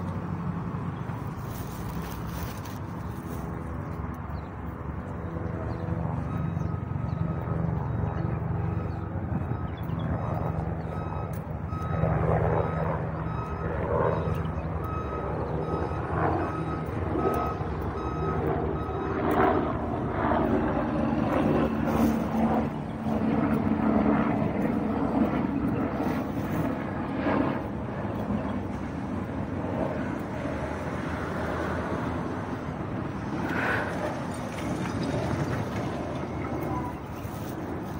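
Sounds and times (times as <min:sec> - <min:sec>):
engine hum: 0:00.0 - 0:37.9
short electronic beeps: 0:08.7 - 0:19.2.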